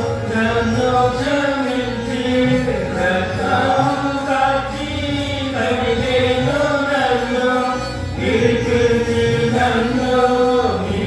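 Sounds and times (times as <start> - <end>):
singers holding long notes: 0.0 - 11.0.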